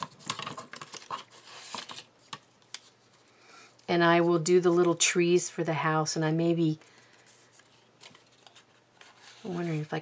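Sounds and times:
paper rustling: 0.0s - 3.3s, 6.9s - 10.0s.

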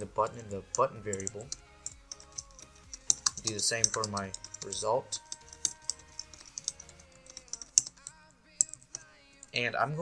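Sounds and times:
keyboard typing clicks: 1.1s - 9.5s.

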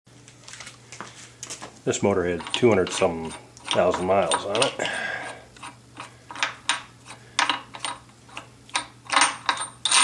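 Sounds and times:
faint steady hum: 0.1s - 10.0s.

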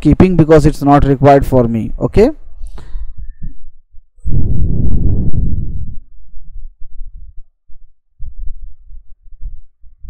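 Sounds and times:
soft low thumps: 2.5s - 10.0s
loud exhale into microphone: 2.6s - 3.4s.

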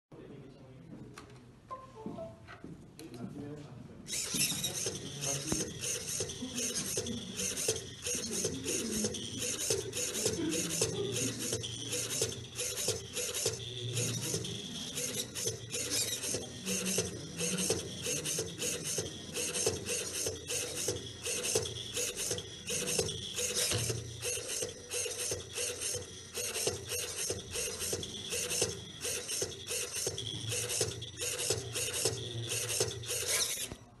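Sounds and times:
servo motors whirring: 4.1s - 34.0s.

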